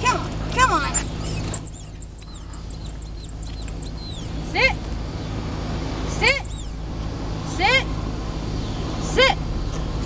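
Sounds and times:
dog squealing and whining: 0:00.6 - 0:04.4, 0:06.2 - 0:06.8.

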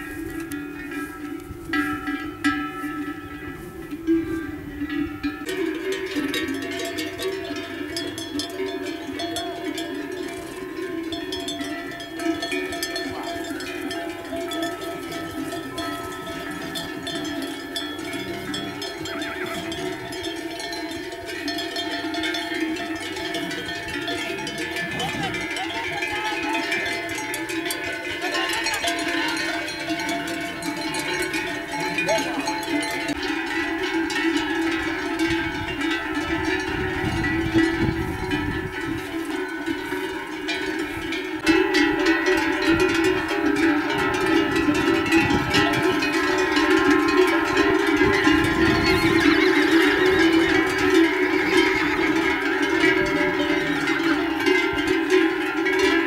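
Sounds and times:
bells clanking on moving horses: 0:00.0 - 0:56.0.

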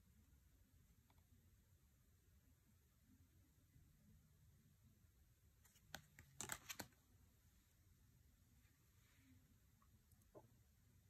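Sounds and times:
cards clicking and sliding: 0:05.6 - 0:07.0.

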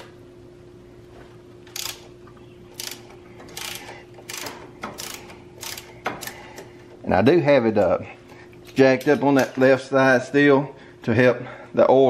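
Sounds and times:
socket ratchet clicking: 0:01.7 - 0:02.1, 0:02.7 - 0:06.7.

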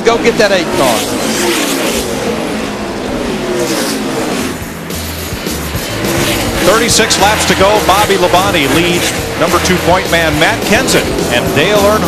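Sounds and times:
race car engines passing: 0:00.0 - 0:12.0.

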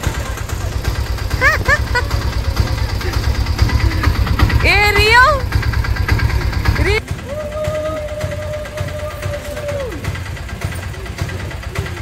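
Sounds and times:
auto-rickshaw engine idling: 0:00.0 - 0:12.0.

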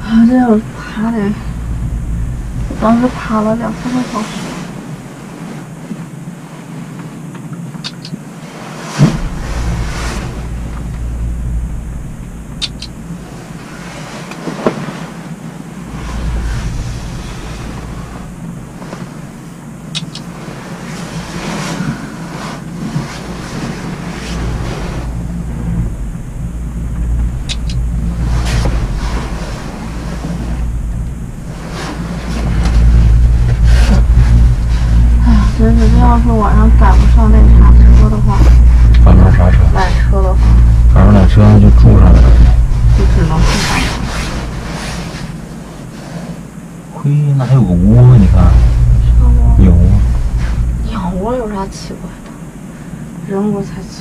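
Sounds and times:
cable car rumble and hiss: 0:00.0 - 0:54.0
sharp clicks: 0:12.5 - 0:13.0, 0:19.9 - 0:20.3, 0:27.4 - 0:27.8.

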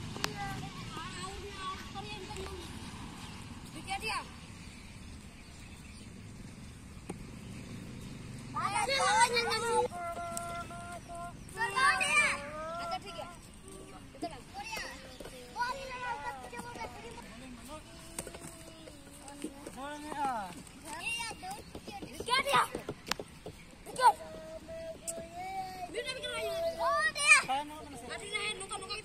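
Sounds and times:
cricket bat striking ball: 0:07.0 - 0:07.3
children shouting: 0:08.5 - 0:18.8, 0:23.9 - 0:29.0.

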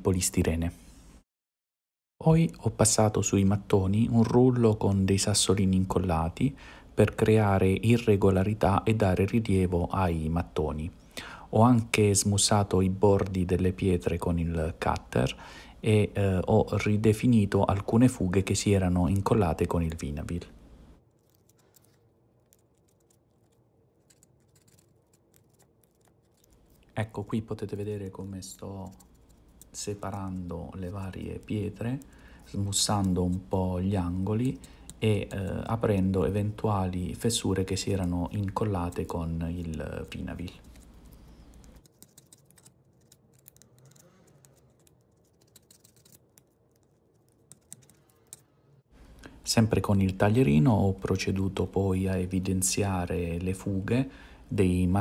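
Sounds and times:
craft knife ticks and scratches: 0:37.8 - 0:48.4.

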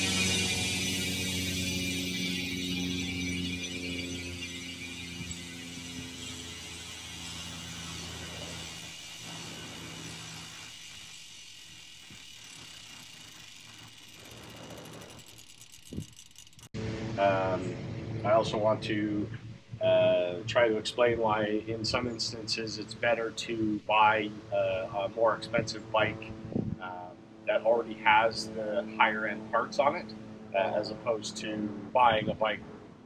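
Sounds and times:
bicycle hub ratcheting buzz: 0:00.0 - 0:16.8.

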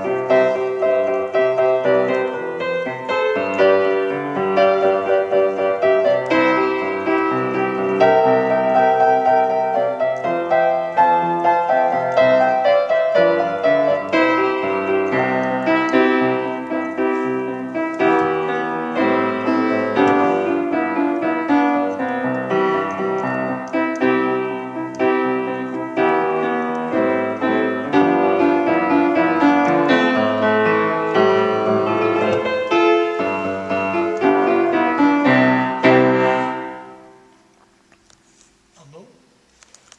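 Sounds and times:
upright piano playing: 0:00.0 - 0:37.6.

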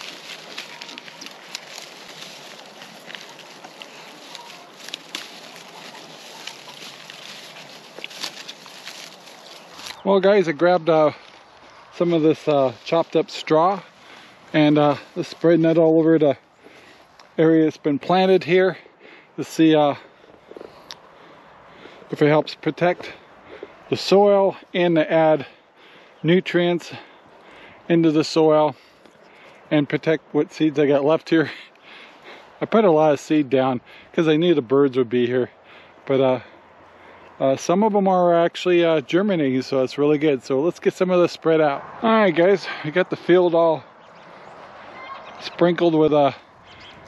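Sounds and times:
pigs chewing and rooting: 0:00.0 - 0:15.8, 0:20.1 - 0:23.9
crackling and crunching husks: 0:00.0 - 0:47.0
quiet outdoor background noise: 0:00.0 - 0:47.0.

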